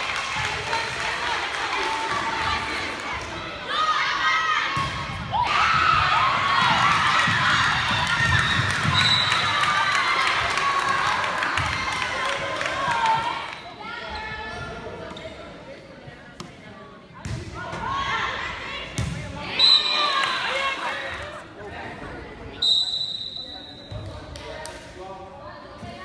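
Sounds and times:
referee's whistle blasts: 0:08.4 - 0:09.6, 0:19.5 - 0:20.2, 0:22.6 - 0:23.9.

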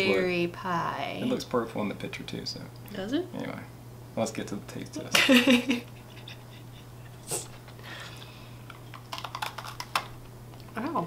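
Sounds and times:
cookies crunching: 0:08.2 - 0:10.8.

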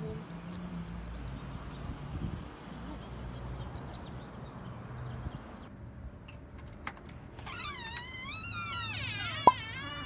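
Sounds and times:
door hinges creaking: 0:07.4 - 0:10.0.

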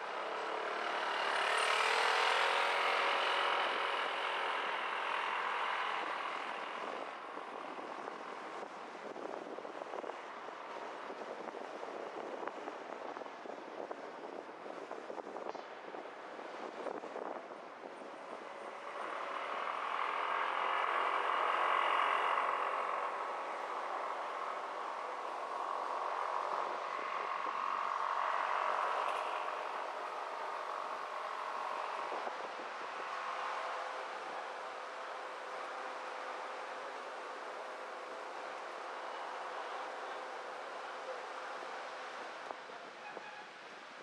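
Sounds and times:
car road and wind noise: 0:00.0 - 0:44.0
engine hum: 0:00.0 - 0:44.0
passing traffic: 0:00.0 - 0:44.0.

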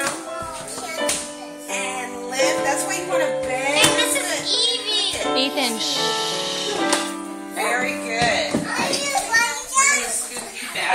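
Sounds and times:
young children chattering: 0:00.0 - 0:07.1, 0:08.6 - 0:10.9.

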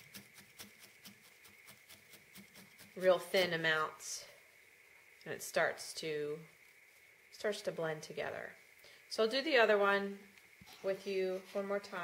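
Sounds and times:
felting needle poking wool: 0:00.0 - 0:03.5.

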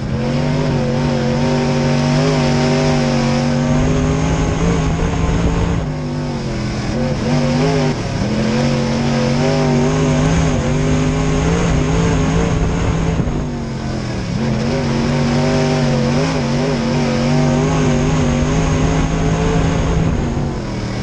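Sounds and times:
race car engine at full throttle: 0:00.0 - 0:21.0.

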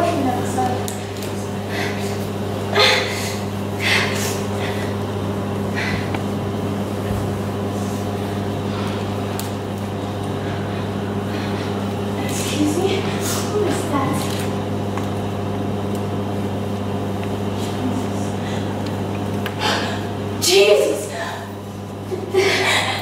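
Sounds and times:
low electrical hum: 0:00.0 - 0:23.0.

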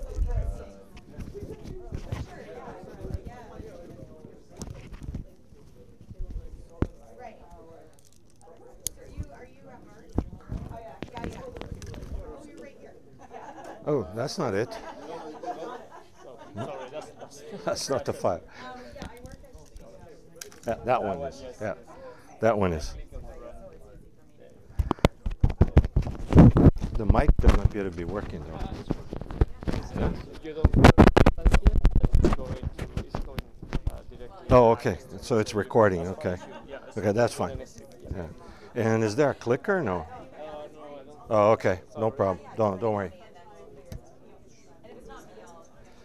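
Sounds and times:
murmur of voices: 0:00.0 - 0:46.0
microphone handling knocks: 0:24.8 - 0:34.0.

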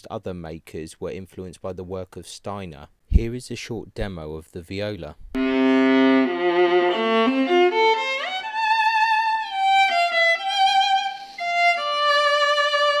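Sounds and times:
solo viola bowed: 0:05.4 - 0:13.0.

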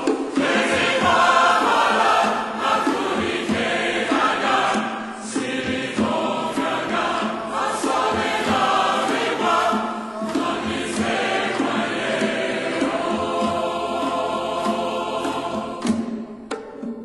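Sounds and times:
choir singing: 0:00.0 - 0:16.6.

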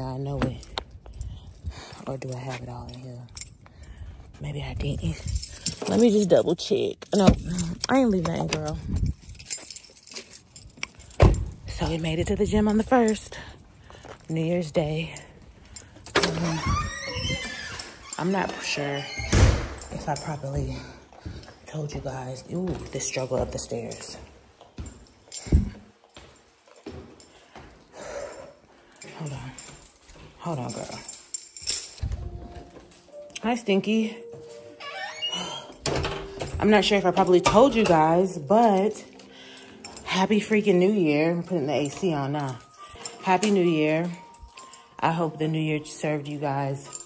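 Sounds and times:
belongings clinking and rustling: 0:00.0 - 0:47.0
thin door squeak: 0:16.2 - 0:19.8, 0:34.7 - 0:36.4.

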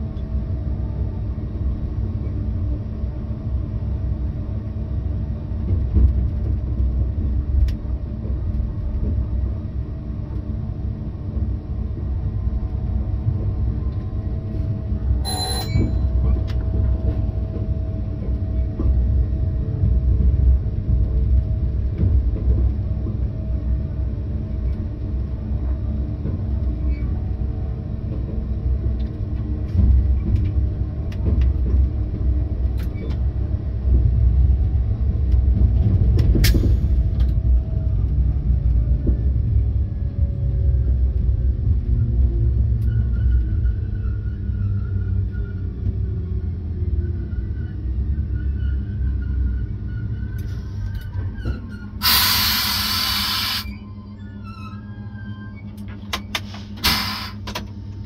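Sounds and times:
locomotive rumbling on track: 0:00.0 - 0:58.0
rail joint clicks: 0:05.6 - 0:10.5, 0:15.2 - 0:27.4, 0:28.0 - 0:44.6, 0:50.3 - 0:53.8, 0:55.6 - 0:58.0
hiss of air: 0:52.0 - 0:53.7.

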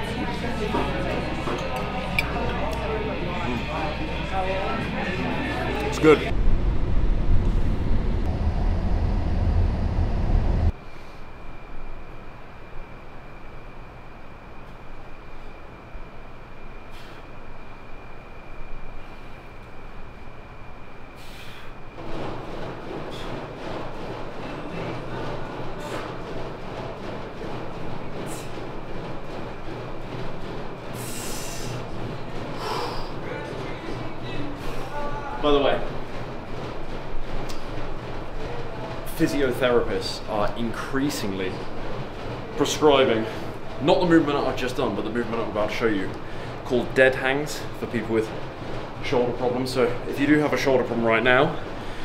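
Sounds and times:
high-pitched whine: 0:02.1 - 0:16.8
car engine and road rumble: 0:06.3 - 0:10.7.

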